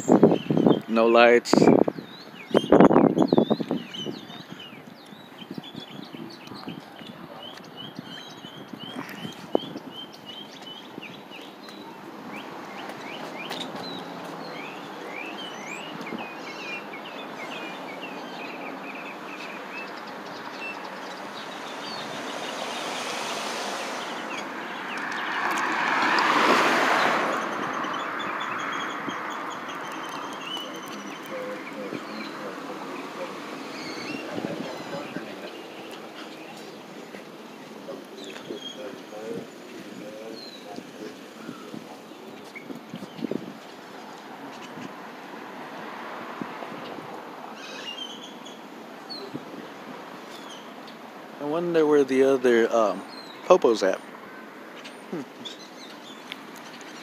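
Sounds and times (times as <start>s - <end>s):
small birds chirping: 0.0s - 45.7s, 46.7s - 57.0s
outdoor street noise: 0.0s - 57.0s
vehicle passing: 10.8s - 50.3s.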